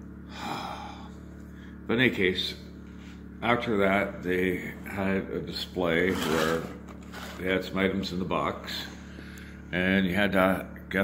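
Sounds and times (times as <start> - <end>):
man exhaling: 0.2 - 1.8.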